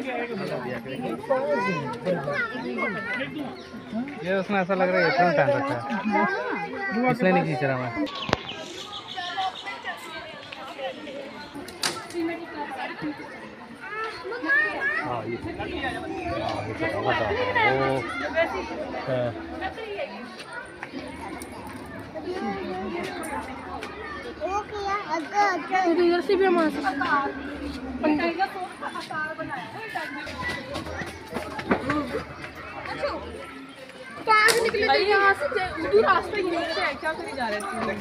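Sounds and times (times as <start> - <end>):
children calling out and chattering: 0.0 - 38.0.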